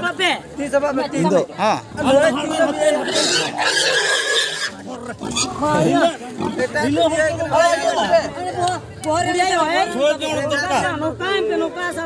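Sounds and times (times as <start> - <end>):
pig squealing: 2.5 - 6.6.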